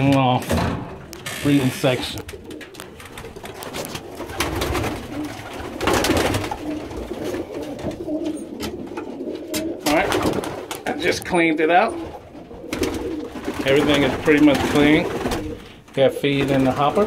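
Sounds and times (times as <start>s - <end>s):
pigeons cooing: 1.1s - 17.0s.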